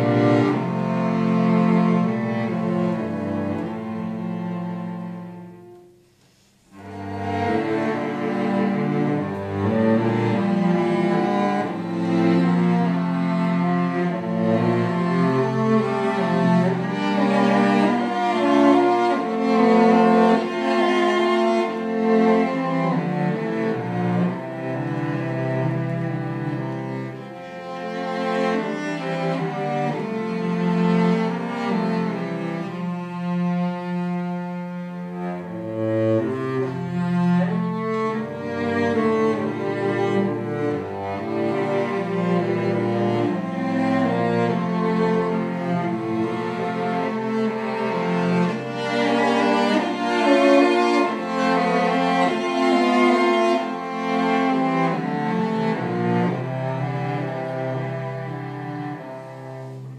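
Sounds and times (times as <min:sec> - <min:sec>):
bowed cellos playing: 0:00.0 - 0:59.9.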